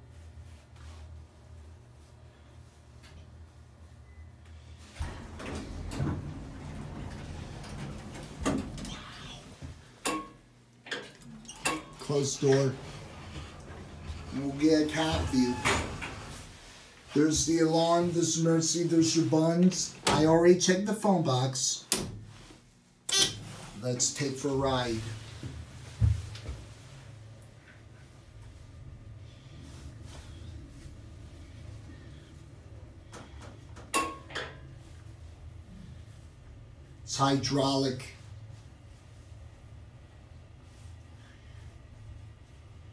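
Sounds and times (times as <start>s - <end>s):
elevator doors sliding open: 4.6s - 10.0s, 11.2s - 16.6s, 24.4s - 42.9s
rumbling noise: 5.0s - 9.8s.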